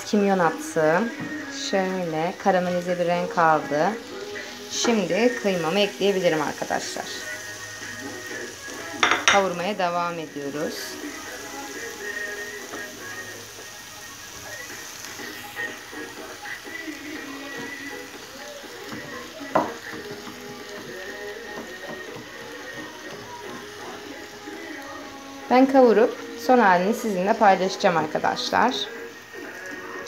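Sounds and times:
faint background music or voices: 0.0 - 30.0
food sizzling in a frying pan: 0.0 - 30.0.

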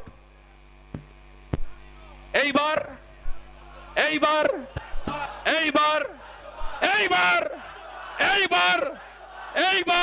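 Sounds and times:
crowd noise: 1.6 - 10.0
man shouting over public address: 1.8 - 3.1, 3.7 - 10.0.

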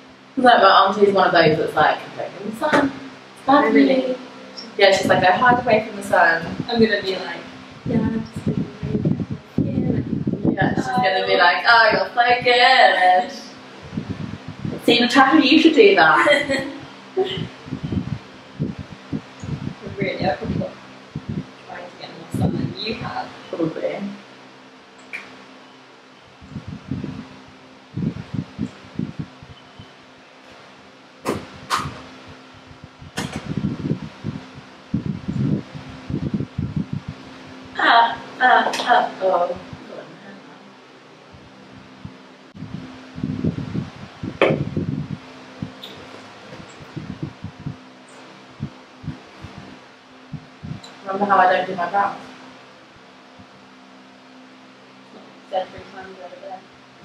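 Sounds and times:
electric fans humming: 0.0 - 57.0
low rumbling pulses: 0.0 - 57.0.

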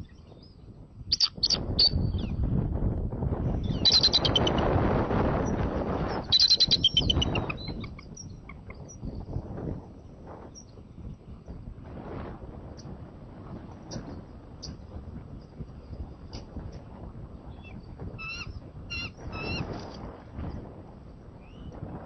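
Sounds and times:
eagle chattering calls: 1.1 - 1.7, 3.6 - 4.7, 5.4 - 8.9, 18.2 - 19.6.

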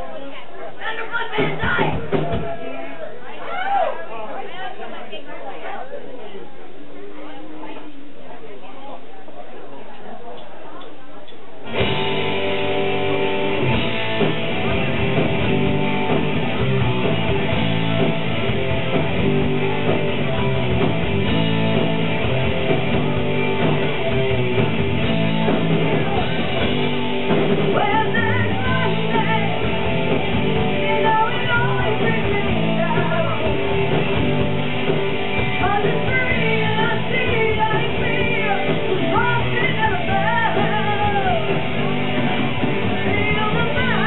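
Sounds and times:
live metal band: 1.3 - 2.9, 11.6 - 44.0.

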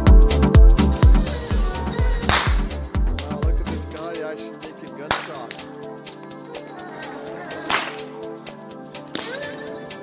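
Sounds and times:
background music: 0.0 - 10.0
loud sharp crack: 2.3 - 2.6, 7.7 - 8.1.

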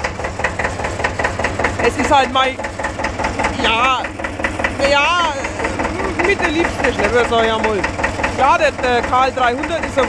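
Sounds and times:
tractor diesel engine idling: 0.0 - 10.0.

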